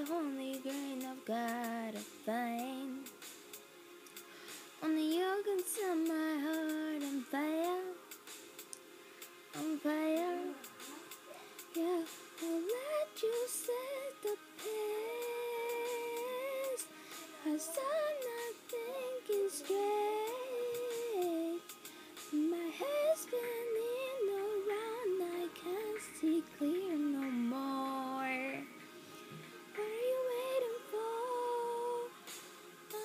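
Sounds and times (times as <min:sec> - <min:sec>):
woman singing unaccompanied: 0:00.0 - 0:03.1, 0:04.8 - 0:08.1, 0:09.5 - 0:21.7, 0:22.3 - 0:28.8, 0:29.7 - 0:32.2.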